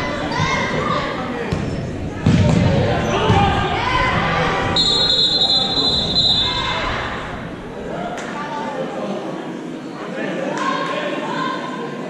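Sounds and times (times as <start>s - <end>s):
voices in hall: 0.0s - 12.0s
referee's whistle: 4.8s - 6.8s.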